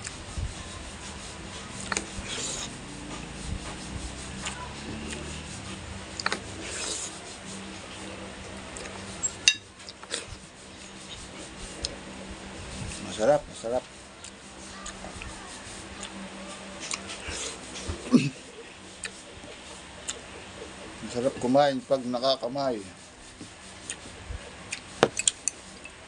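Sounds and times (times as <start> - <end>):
cutlery scraping a plate: 9.2 - 10.3.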